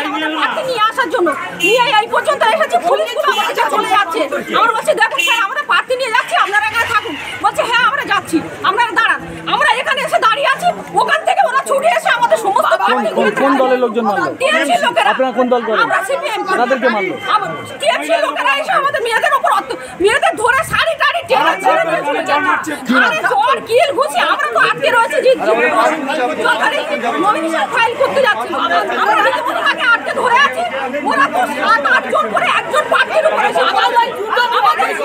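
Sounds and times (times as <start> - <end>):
woman talking: 0.0 - 15.2, 17.3 - 35.0
voices chattering: 0.0 - 35.0.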